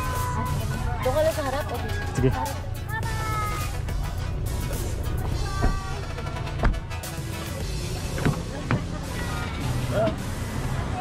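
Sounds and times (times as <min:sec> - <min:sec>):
background music: 0:00.0 - 0:11.0
car engine idling: 0:00.0 - 0:11.0
voices: 0:00.0 - 0:11.0.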